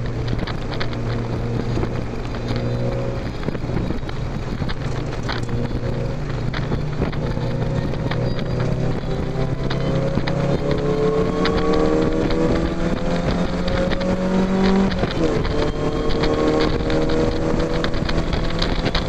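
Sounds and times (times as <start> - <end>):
car engine accelerating hard: 0.0 - 19.0.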